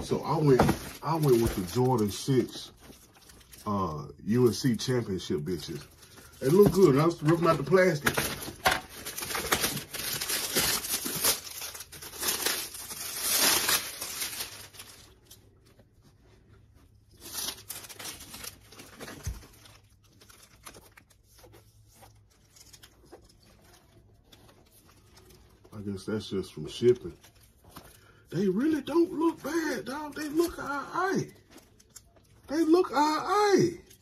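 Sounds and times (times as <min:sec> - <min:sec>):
plastic wrap tearing and crinkling: 0:00.0 - 0:15.7, 0:17.0 - 0:34.0.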